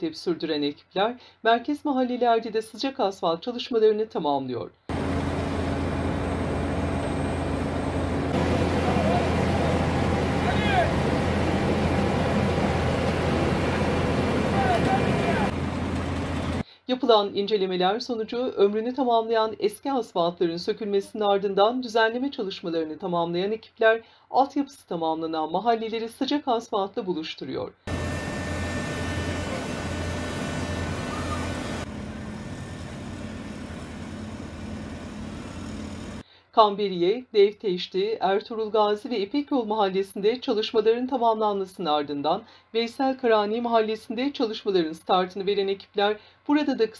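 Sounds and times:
diesel machinery engines running: 4.9s - 16.6s, 27.9s - 36.2s.

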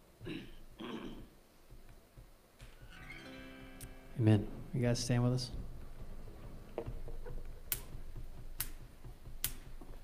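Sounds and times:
drumstick clicks: 7.7s - 10.0s.

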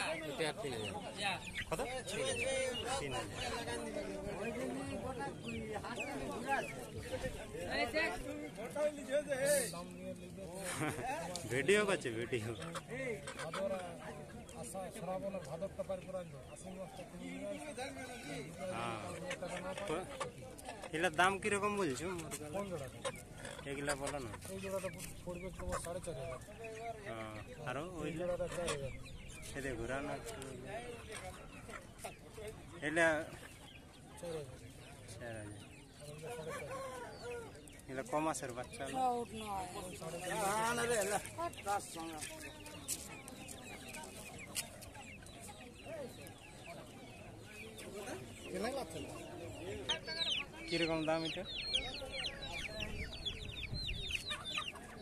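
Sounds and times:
chickens clucking: 0.0s - 55.0s
people talking: 0.0s - 55.0s.

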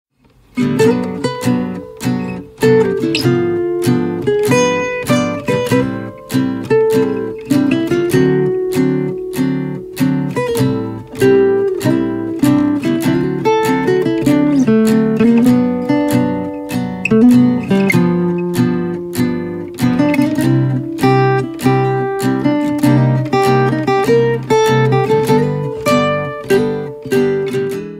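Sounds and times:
acoustic guitar strumming: 0.2s - 27.9s.

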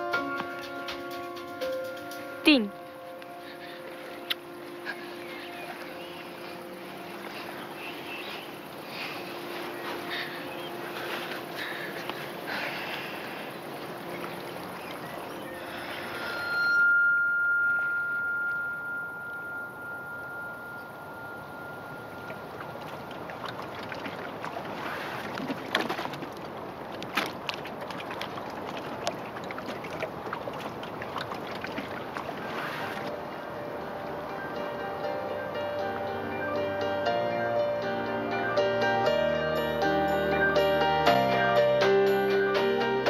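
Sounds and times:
lake water lapping: 2.8s - 16.6s, 20.6s - 35.2s
high ringing tone: 15.3s - 23.5s.

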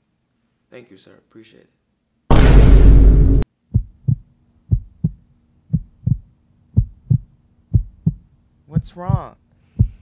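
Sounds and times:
faint steady hum: 3.5s - 10.0s
heartbeat thumps: 3.6s - 10.0s.

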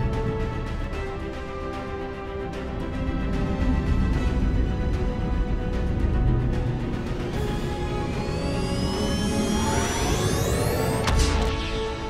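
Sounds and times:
dramatic film score: 0.0s - 12.0s
rising warp whine: 7.1s - 11.4s.

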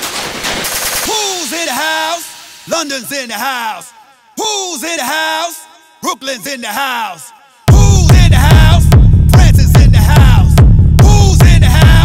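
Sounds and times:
industrial techno music: 0.0s - 12.0s
sampled man's voice calling out: 1.1s - 12.0s.

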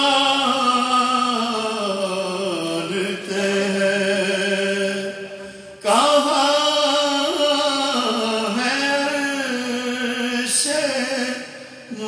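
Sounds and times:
man chanting devotional poem: 0.0s - 12.0s.

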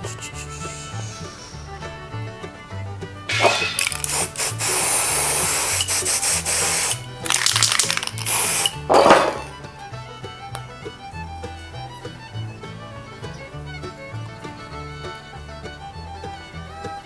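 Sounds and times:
background music with bass line: 0.0s - 7.2s, 8.3s - 17.0s
spray paint can hissing: 3.3s - 9.5s.

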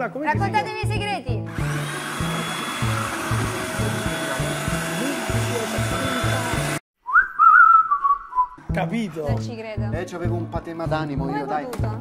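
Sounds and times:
food processor running: 1.5s - 6.8s
person whistling: 7.0s - 8.6s
background music with low beat: 8.5s - 12.0s.

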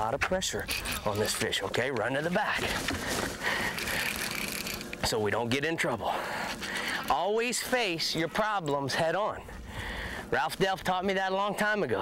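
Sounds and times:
fishing reel drag buzzing: 0.6s - 1.3s, 3.4s - 5.0s.

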